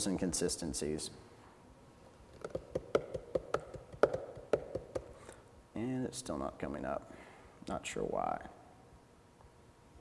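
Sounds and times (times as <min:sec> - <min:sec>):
typing on a laptop keyboard: 0:02.4 - 0:05.1.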